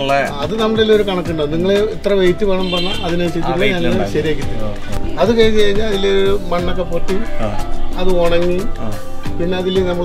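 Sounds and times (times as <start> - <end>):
man talking animatedly: 0.0 - 10.0.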